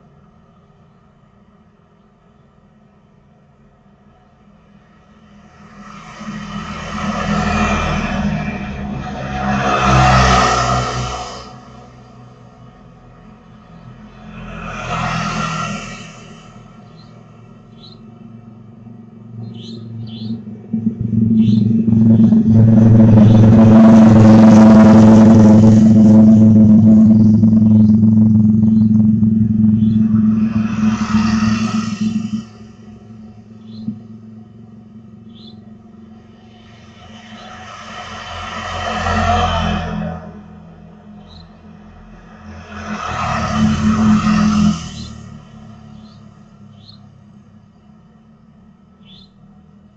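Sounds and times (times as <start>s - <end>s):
motorbikes passing: 5.2s - 49.9s
loud steady hum: 15.6s - 49.9s.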